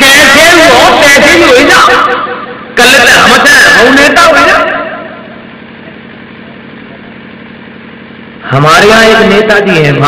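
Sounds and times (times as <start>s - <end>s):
low engine-like hum: 4.8s - 10.0s.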